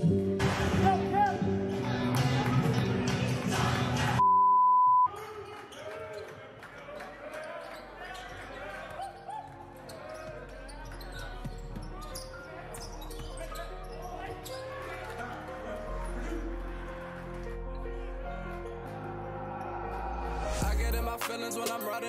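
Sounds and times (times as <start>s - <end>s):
music: 0.0s - 4.2s, 8.4s - 22.0s
shoes squeaking: 7.4s - 15.4s.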